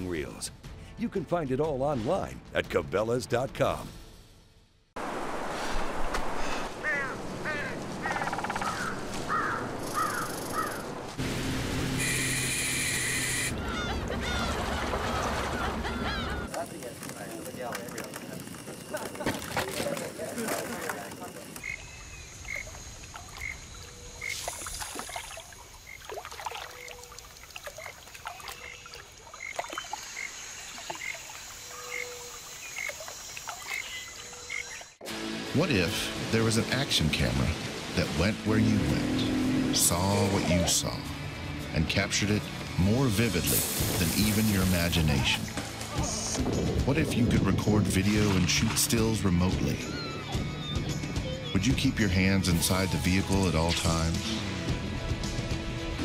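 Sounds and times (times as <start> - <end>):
frogs calling: 6.7 - 11.0, 12.0 - 14.6, 15.2 - 35.0
loud steady buzzing tone: 11.2 - 13.6
high insect drone: 11.6 - 13.6, 18.1 - 28.0, 28.6 - 35.3
water trickling: 19.8 - 34.7
bird calls with falling notes: 27.8 - 35.0, 49.6 - 51.7.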